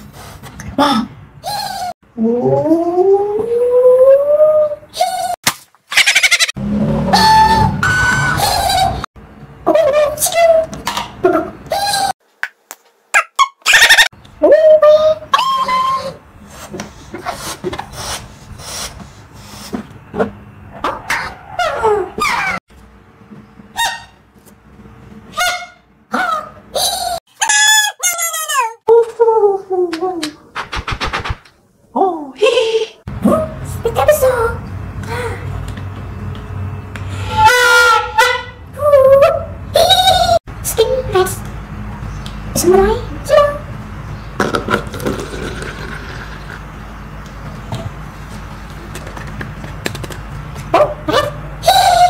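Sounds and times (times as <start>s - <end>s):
air squealing out of balloon: 6.0s - 9.1s, 37.0s - 38.5s.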